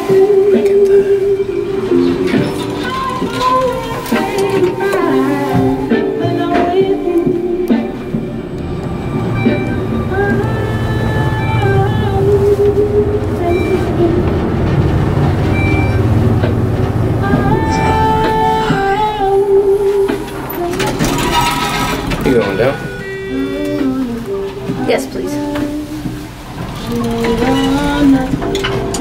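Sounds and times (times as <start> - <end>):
background music: 0.0 - 29.0
elevator car rumbling: 0.0 - 29.0.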